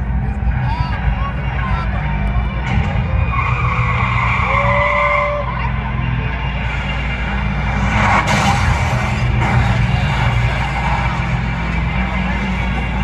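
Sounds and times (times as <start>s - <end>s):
crowd noise: 0.0s - 13.0s
low drone from loudspeakers: 0.0s - 13.0s.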